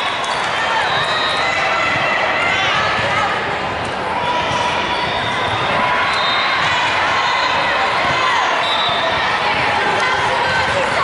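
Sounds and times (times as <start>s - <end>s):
many voices talking and calling: 0.0s - 11.0s.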